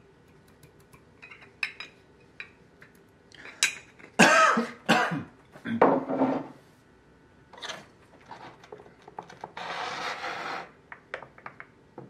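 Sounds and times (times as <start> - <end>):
man clearing his throat: 4.2 - 6.0
man coughing harshly: 4.2 - 6.0.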